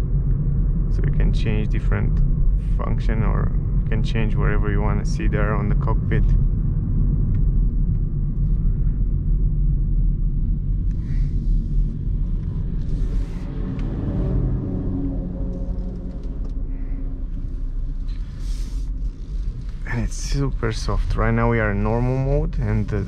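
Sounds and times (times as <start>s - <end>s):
road and engine rumble in car: 0.0s - 23.0s.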